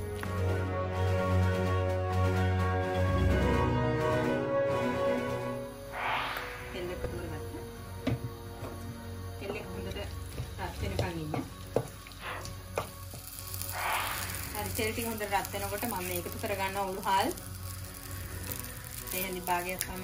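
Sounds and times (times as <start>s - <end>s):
oil sizzling in a clay pot: 0.0s - 20.0s.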